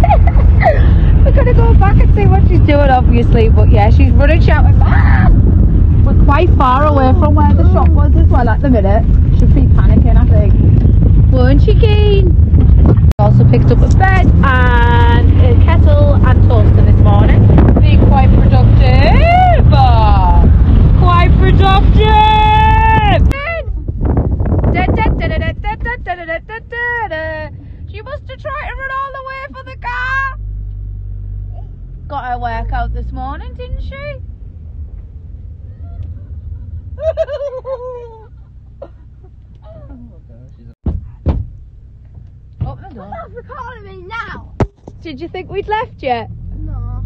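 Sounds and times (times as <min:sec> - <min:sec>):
car cabin road rumble: 0:00.0 - 0:47.0.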